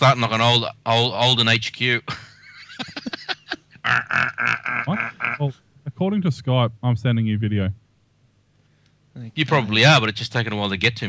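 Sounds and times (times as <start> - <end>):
person chuckling: 2.1 - 5.6.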